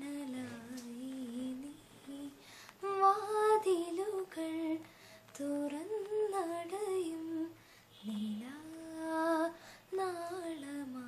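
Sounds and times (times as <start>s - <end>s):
woman singing solo: 0.0s - 4.8s.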